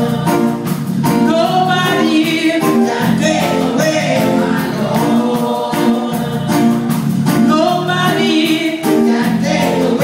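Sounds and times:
gospel choir singing: 0.0s - 10.0s
instrumental accompaniment with beat: 0.0s - 10.0s.

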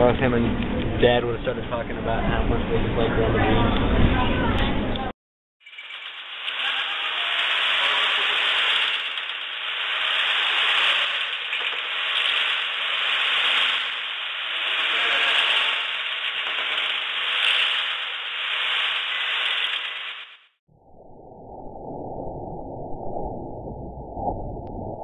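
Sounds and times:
mechanical rattle and whirr: 5.6s - 20.5s.

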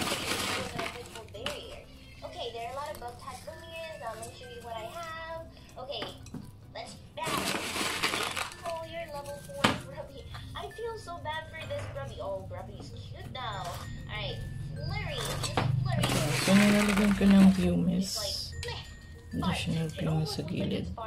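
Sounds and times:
gravel pebbles poured rattling: 0.0s - 1.2s, 7.3s - 8.8s, 16.0s - 17.7s.

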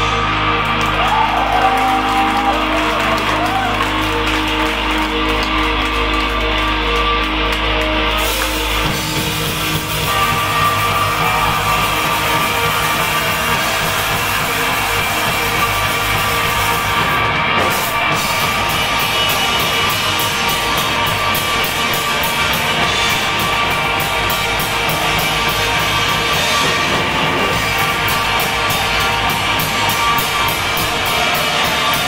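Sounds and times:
live rock band playing loud: 0.0s - 32.0s.

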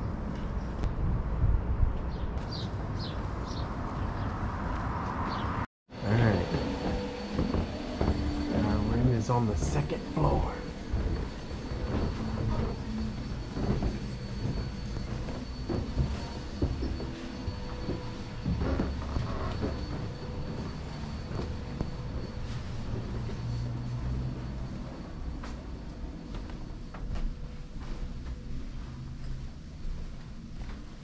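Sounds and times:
faint high whine: 5.9s - 31.0s
muffled footfalls on stairs: 6.4s - 22.0s.

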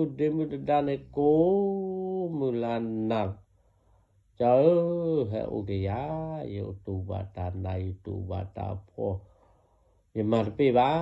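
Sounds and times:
man chanting: 0.0s - 3.4s, 4.4s - 9.3s, 10.2s - 11.0s.

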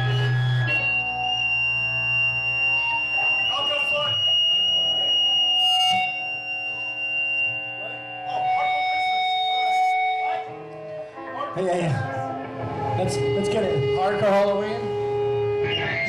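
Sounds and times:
low amp hum: 0.0s - 11.0s
electric guitar feedback: 0.0s - 16.0s.

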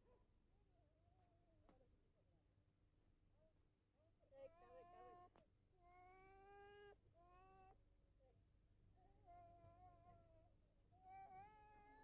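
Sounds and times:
faint animal cries: 11.0s - 12.0s.

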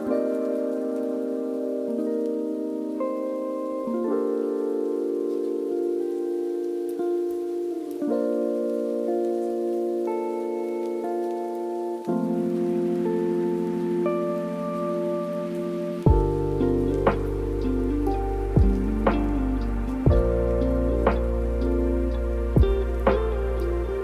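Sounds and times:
rain pattering: 0.0s - 24.0s
soft keyboard chords: 0.0s - 24.0s
deep bass and slow drum beat: 16.1s - 16.4s, 17.0s - 21.8s, 22.5s - 23.9s.

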